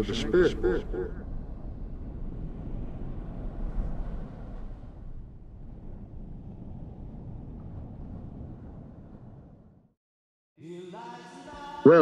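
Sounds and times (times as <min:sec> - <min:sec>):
low steady rumble drone: 0:00.0 - 0:03.2.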